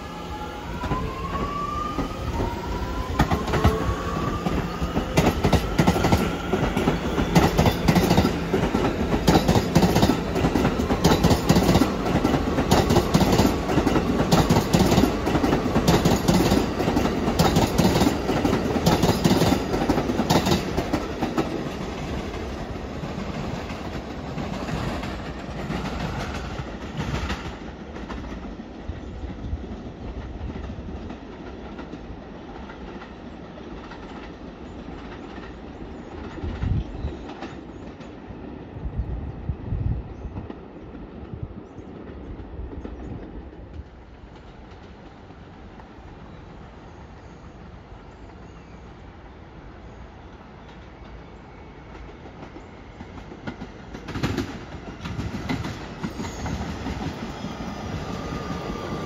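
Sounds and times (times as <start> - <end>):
train wheels clattering over rails: 0.8 - 38.2, 50.3 - 59.0
train motor whine: 56.1 - 59.0.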